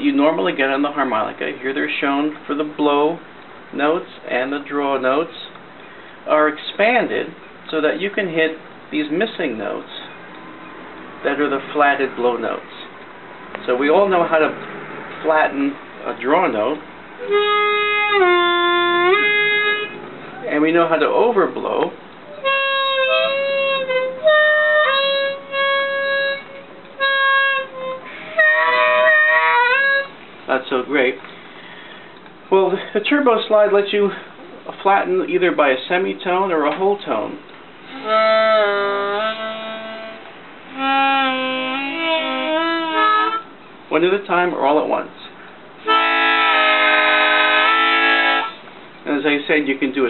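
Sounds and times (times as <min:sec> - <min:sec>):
harmonica notes bending: 0:17.2 - 0:20.6, 0:22.2 - 0:30.2, 0:37.8 - 0:43.8, 0:45.8 - 0:48.7.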